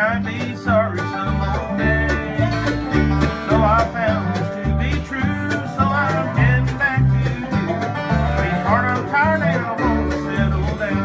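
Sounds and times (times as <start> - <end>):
sliding lead melody: 0.0 - 11.0
strummed acoustic guitar: 0.0 - 11.0
upright bass thumping: 0.0 - 11.0.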